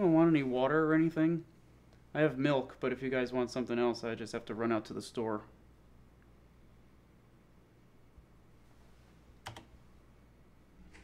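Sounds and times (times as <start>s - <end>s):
computer keyboard clicks: 9.4s - 9.7s.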